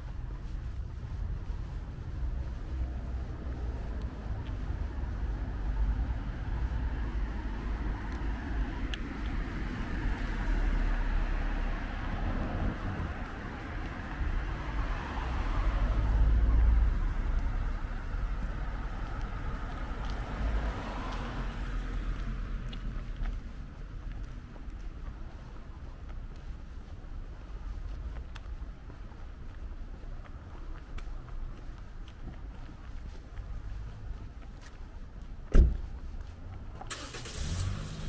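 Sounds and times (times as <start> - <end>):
wind rumbling on microphone: 0.0 - 36.8
car approaching: 0.0 - 38.0
road traffic hum: 0.0 - 38.0.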